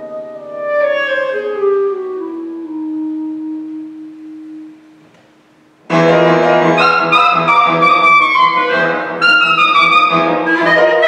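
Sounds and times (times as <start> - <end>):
clarinet low note: 0.0 - 5.0, 6.4 - 11.0.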